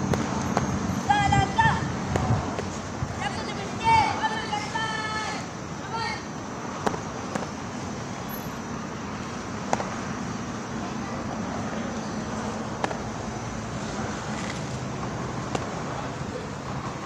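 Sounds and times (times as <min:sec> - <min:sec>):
traffic noise: 0:00.0 - 0:17.0.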